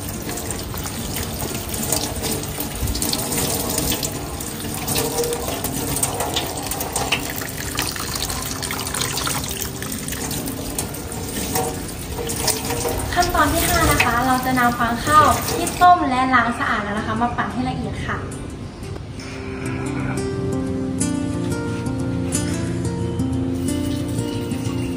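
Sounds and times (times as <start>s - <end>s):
tap water running into a sink: 0.0s - 15.9s.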